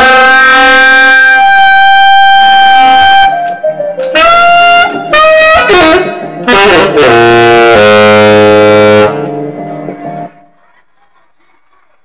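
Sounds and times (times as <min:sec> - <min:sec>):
saxophone low note: 0:00.0 - 0:09.3.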